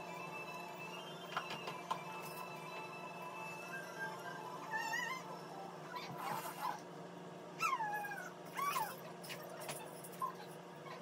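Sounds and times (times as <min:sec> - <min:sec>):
dog whimpering: 0:04.6 - 0:06.8, 0:07.6 - 0:11.0.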